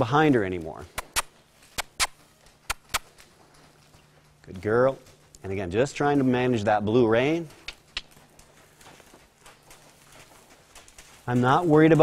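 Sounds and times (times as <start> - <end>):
faint low hum: 0.0 - 12.0
short sharp clicks: 1.0 - 3.1.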